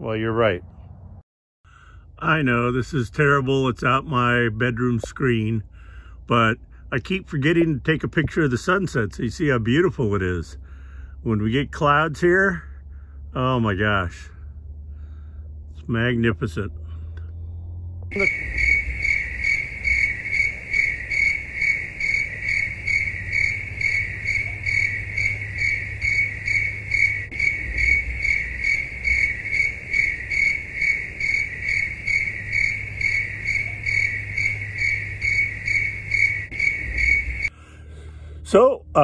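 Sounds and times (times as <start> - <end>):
low steady rumble: 0.0 - 39.0
cricket chirping: 18.1 - 37.6.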